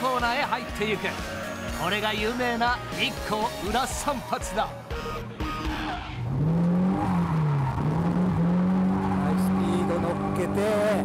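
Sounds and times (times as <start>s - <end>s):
car engine revving hard: 5.6s - 11.0s.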